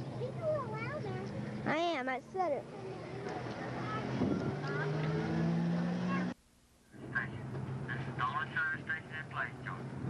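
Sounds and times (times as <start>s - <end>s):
low hum and hiss: 6.4s - 10.0s.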